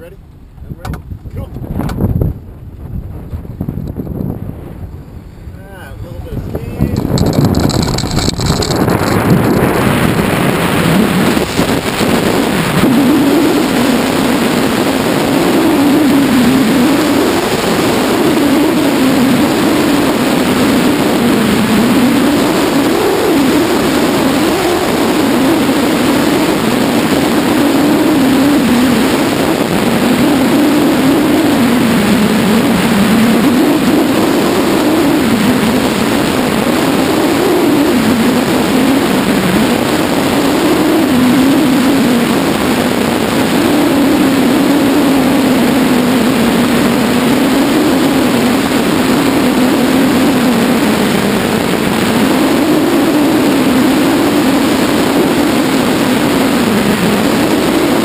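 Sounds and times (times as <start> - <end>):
small plane engine drone: 0.0 - 58.0
wind on microphone: 0.0 - 58.0.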